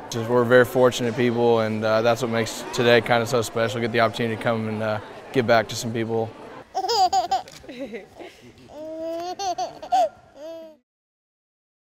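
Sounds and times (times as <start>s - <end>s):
baby laughing and babbling: 6.7s - 10.8s.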